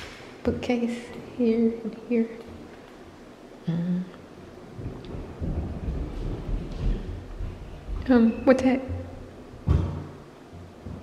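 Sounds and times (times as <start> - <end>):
low irregular rumbling: 1.2 - 11.0.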